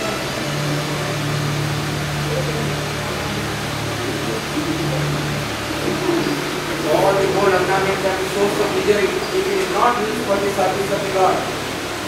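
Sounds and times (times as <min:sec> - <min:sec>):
low held musical drone: 0:00.0 - 0:12.0
steady hiss: 0:00.0 - 0:12.0.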